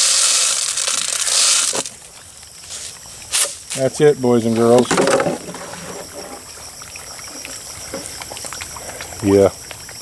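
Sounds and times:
water trickling: 0.0s - 10.0s.

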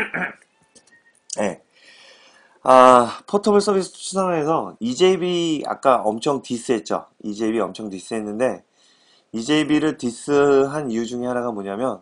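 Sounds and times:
person speaking: 1.3s - 1.7s, 9.4s - 12.0s.

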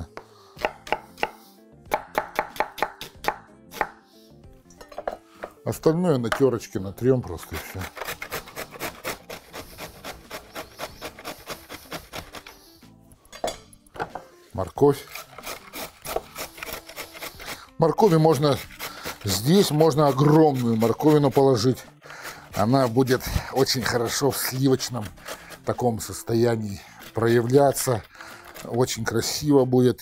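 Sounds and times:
knife chopping on wooden board: 0.2s - 4.0s, 7.8s - 12.6s, 15.1s - 17.5s
carrot grated on metal grater: 7.4s - 12.5s, 14.9s - 29.1s.

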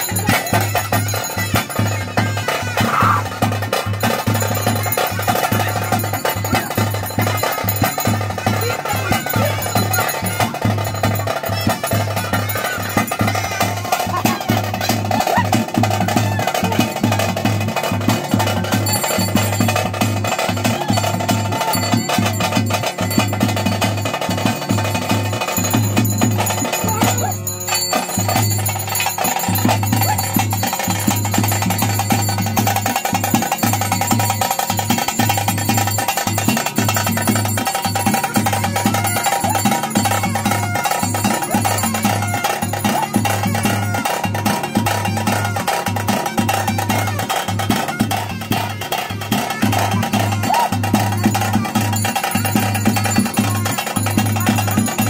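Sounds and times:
rapid drumming: 0.0s - 55.0s
wavering held melody: 3.9s - 55.0s.

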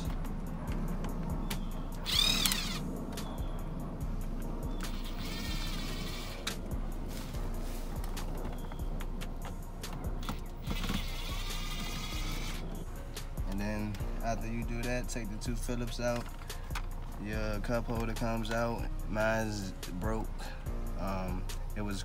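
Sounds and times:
background music: 0.0s - 22.0s
electric screwdriver motor whining: 2.0s - 2.9s, 4.8s - 6.5s, 10.2s - 12.7s.

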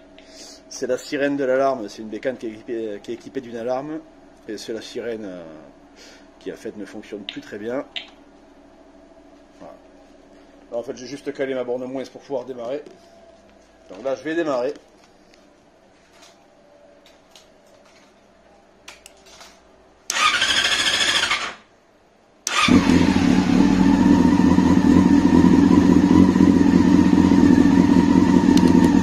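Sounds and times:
motorcycle engine cranking: 20.1s - 21.6s, 22.5s - 23.6s
motorcycle engine idling: 22.6s - 29.0s.

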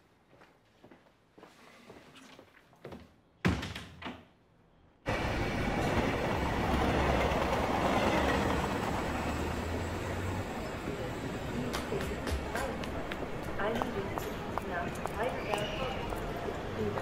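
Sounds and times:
train station noise: 5.1s - 17.0s.

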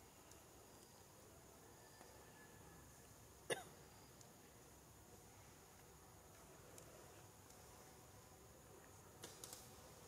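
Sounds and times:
insect hum: 0.0s - 10.0s.

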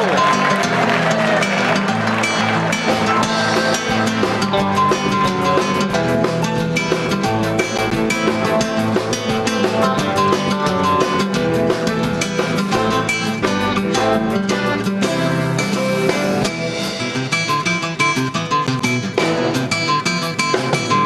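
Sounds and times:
bass: 0.0s - 21.0s
drum kit: 0.0s - 21.0s.

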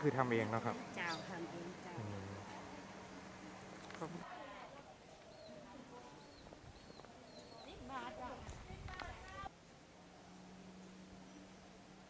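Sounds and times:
people talking: 5.5s - 9.5s.

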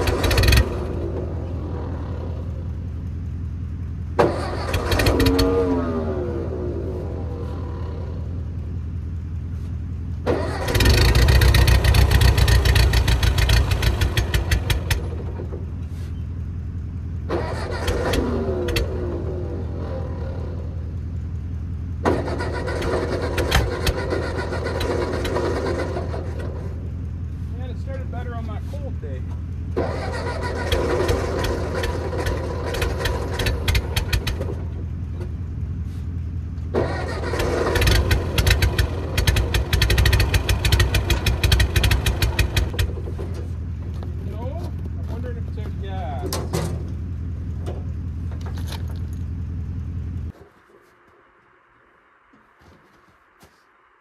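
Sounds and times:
tractor engine rumbling: 0.0s - 54.0s.

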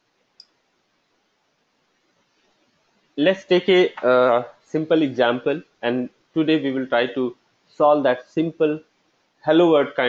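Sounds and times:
computer mouse click: 0.4s - 0.6s.

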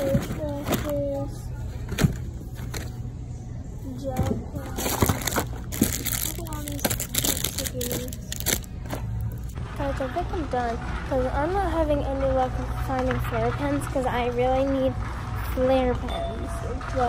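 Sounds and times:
plastic packets clicking and crinkling: 4.7s - 9.6s.

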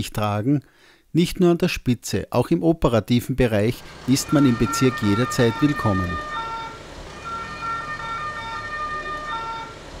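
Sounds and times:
ambulance two-tone siren: 3.9s - 10.0s.

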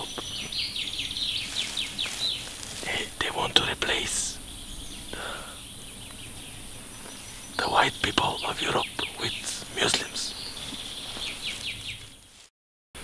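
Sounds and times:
birds chirping: 0.0s - 12.5s.

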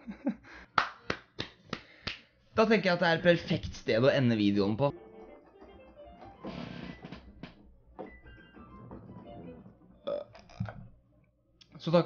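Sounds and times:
person burping: 10.0s - 10.9s.

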